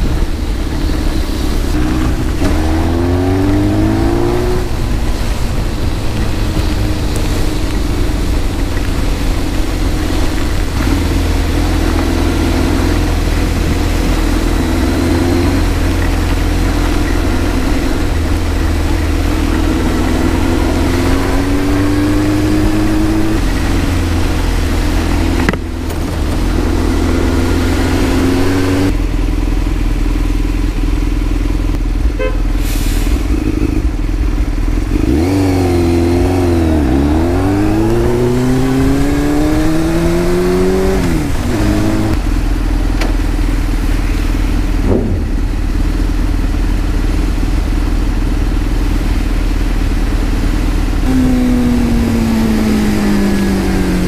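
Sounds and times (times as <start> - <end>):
motorcycle engine running: 0.0 - 32.6, 33.2 - 54.0
wet road noise: 0.0 - 54.0
wind: 0.0 - 54.0.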